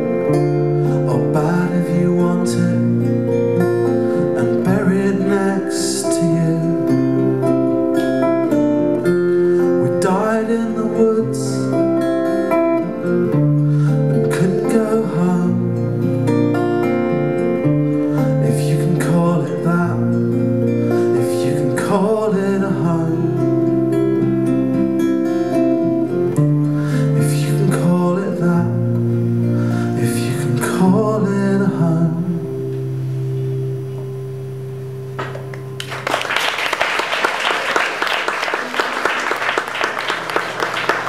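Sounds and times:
acoustic guitars strumming: 0:00.0 - 0:36.0
audience applause: 0:35.2 - 0:41.0.

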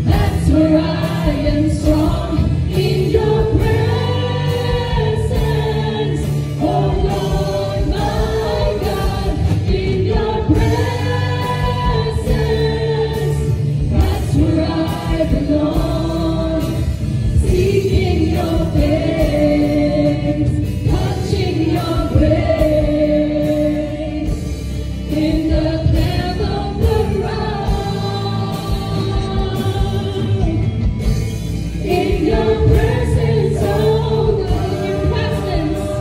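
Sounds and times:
band accompaniment: 0:00.0 - 0:36.0
choir singing gospel: 0:00.0 - 0:36.0.

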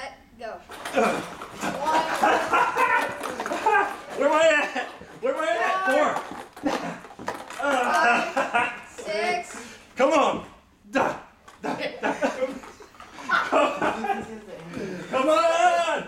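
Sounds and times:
excited voices shouting: 0:01.6 - 0:06.2.

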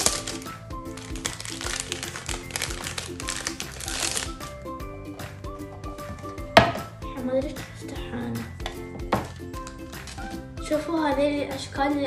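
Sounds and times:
plastic wrapping crinkling: 0:00.0 - 0:04.6, 0:09.3 - 0:10.4
background music with repeating melody: 0:00.0 - 0:12.0.

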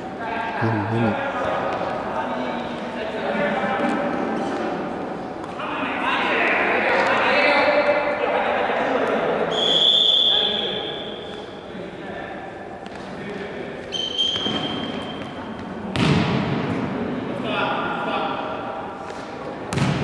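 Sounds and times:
players calling out: 0:00.6 - 0:01.2
ball played on hard court: 0:13.9 - 0:16.9, 0:19.0 - 0:20.0.

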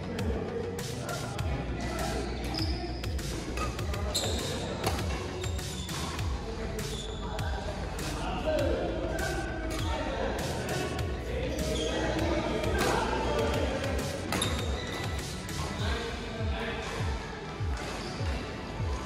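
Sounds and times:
background music: 0:00.0 - 0:19.0
voices: 0:00.0 - 0:19.0
rackets striking shuttlecocks: 0:03.3 - 0:06.2.

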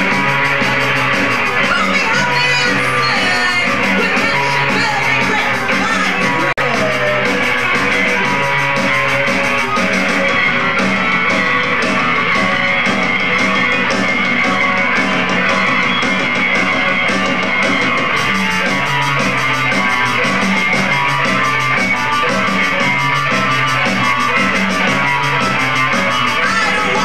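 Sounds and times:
drum kit: 0:00.0 - 0:27.0
electric guitars: 0:00.0 - 0:27.0.

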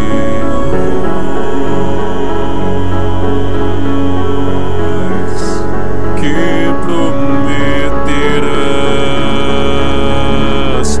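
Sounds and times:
gothic instrumental music: 0:00.0 - 0:11.0
steady low tone: 0:00.0 - 0:11.0.

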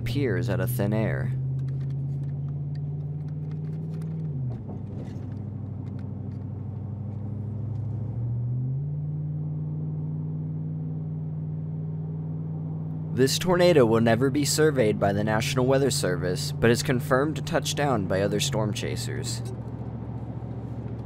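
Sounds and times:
car engine from inside cabin: 0:00.0 - 0:21.0.

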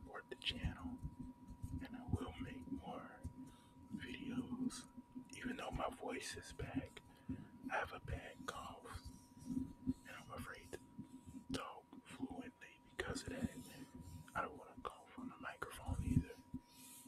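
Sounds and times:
person whispering into microphone: 0:00.0 - 0:17.0.

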